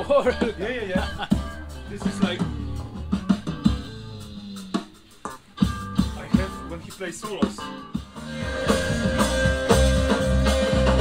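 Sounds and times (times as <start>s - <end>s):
drum kit hits: 0.0s - 11.0s
held guitar and bass notes: 0.0s - 11.0s.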